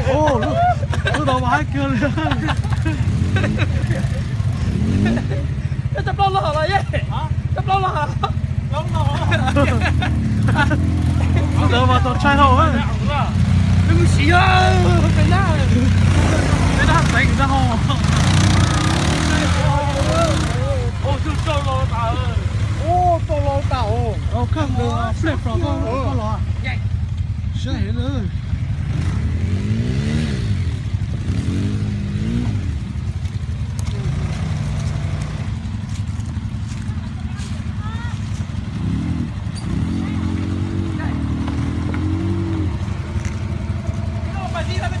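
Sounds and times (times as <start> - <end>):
vehicle engine running: 0.0 - 45.0.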